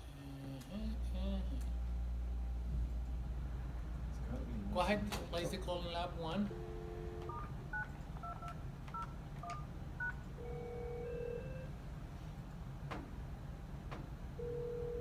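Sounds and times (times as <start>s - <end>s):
telephone dial tone: 7.1s - 11.7s, 14.4s - 15.0s
keypad beeps: 7.3s - 11.7s
telephone ringback tone: 10.0s - 11.7s, 14.4s - 15.0s.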